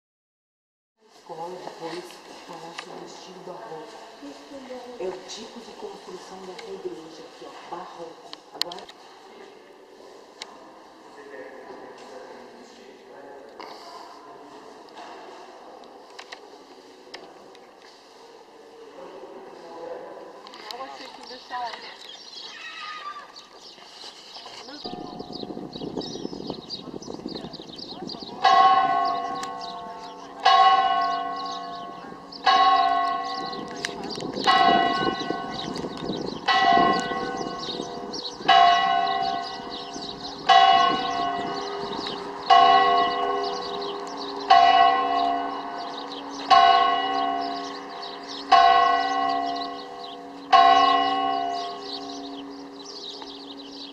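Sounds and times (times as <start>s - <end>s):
church bell tolling: 24.8s - 53.9s.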